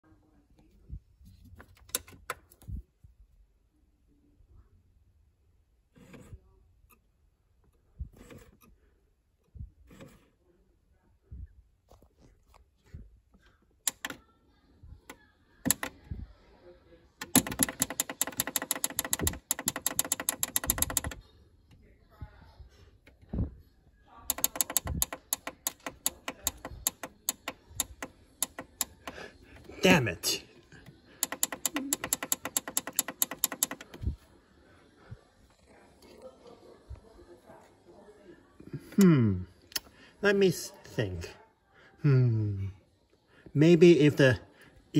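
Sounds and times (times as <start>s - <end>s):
player buttons clicking: 15.7s - 15.9s, 17.2s - 21.2s, 24.3s - 29.7s, 31.2s - 34.0s
disc tray clicking and buzzing: 24.3s - 29.7s.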